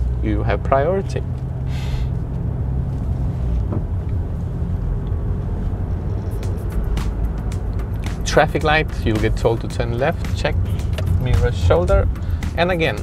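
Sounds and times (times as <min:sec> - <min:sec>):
engine and tyre rumble inside car: 0:00.0 - 0:13.0.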